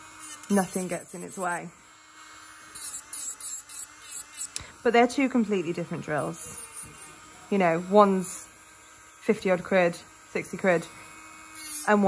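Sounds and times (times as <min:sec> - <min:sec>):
nail drill filing a nail: 0:00.0 - 0:12.0.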